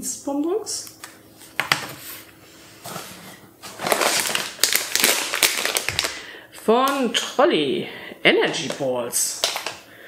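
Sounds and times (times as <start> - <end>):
plastic bag crinkling: 3.6 - 6.3, 8.5 - 9.8.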